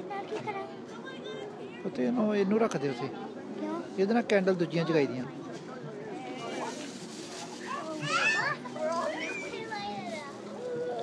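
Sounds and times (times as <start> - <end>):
children shouting: 8.0 - 11.0.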